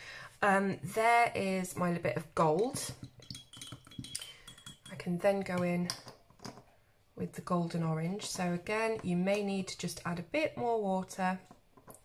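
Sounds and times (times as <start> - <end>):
paintbrush clinking in glass jar: 2.8 - 5.8.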